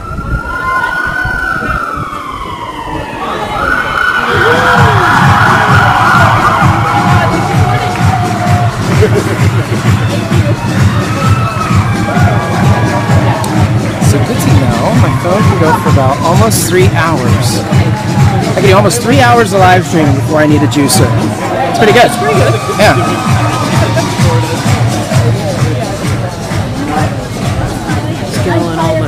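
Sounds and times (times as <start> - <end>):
wailing siren-like tone: 0.0 - 7.9
crowd voices: 0.0 - 29.0
music with pulsing beat: 4.3 - 29.0.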